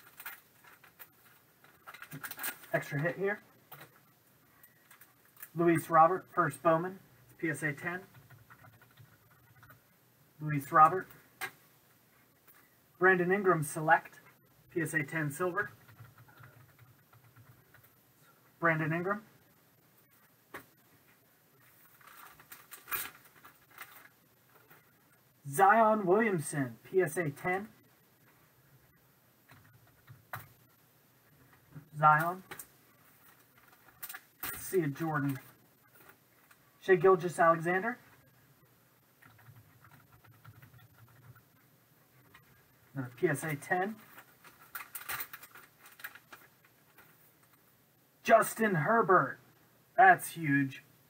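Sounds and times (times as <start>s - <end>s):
plastic cases clicking and scraping: 0.0s - 2.7s, 44.0s - 47.6s
plastic clicks and crinkles: 0.0s - 3.0s, 3.6s - 5.6s, 20.2s - 25.3s, 29.4s - 30.7s, 31.3s - 36.7s, 39.0s - 42.8s, 43.5s - 47.6s.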